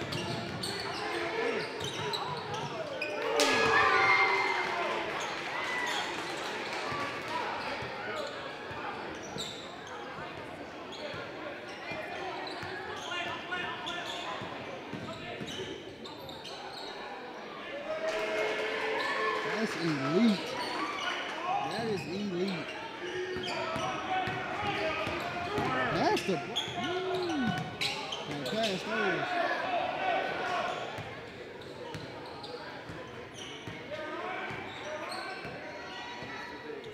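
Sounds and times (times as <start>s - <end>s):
crowd chatter: 0.0s - 36.9s.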